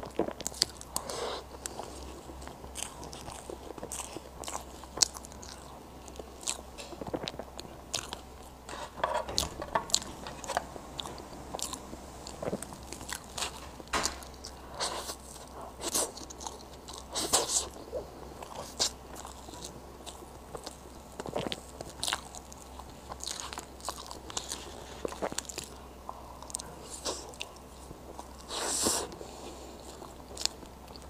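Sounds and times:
chewing and mouth clicks: 0.0s - 8.6s, 9.2s - 29.2s, 29.8s - 31.0s
fork scraping a plate: 8.7s - 10.7s.

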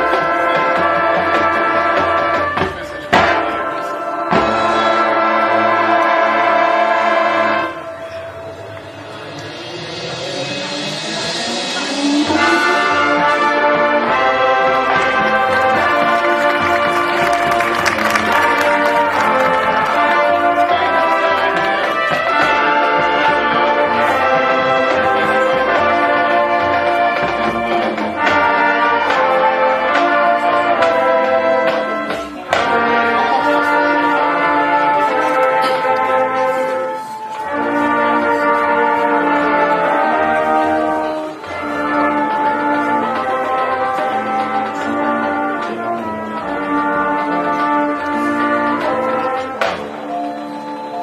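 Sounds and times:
marching band brass chords: 0.0s - 51.0s
cymbal crash: 8.4s - 13.6s.

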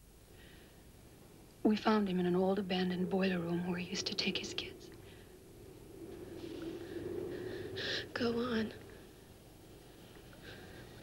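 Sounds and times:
low steady tone: 0.0s - 11.0s
person breathing: 0.3s - 0.9s, 6.2s - 8.2s, 10.0s - 11.0s.

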